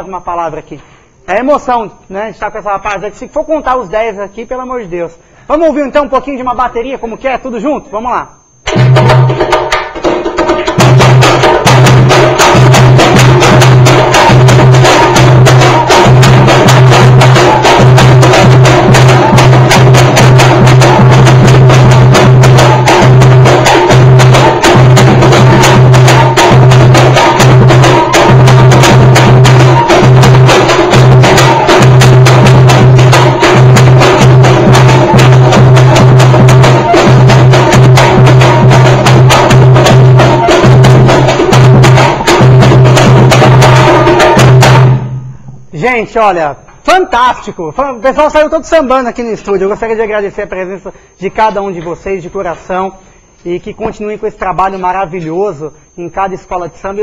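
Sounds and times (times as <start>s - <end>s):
samba percussion band: 8.6s - 45.7s
bass drum heavy beat: 8.7s - 45.5s.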